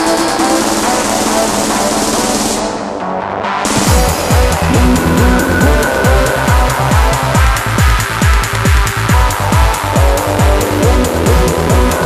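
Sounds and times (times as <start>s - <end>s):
sustained synth chords: 0.3s - 12.0s
hi-hats ticking: 3.7s - 12.0s
kick drum: 3.7s - 12.0s.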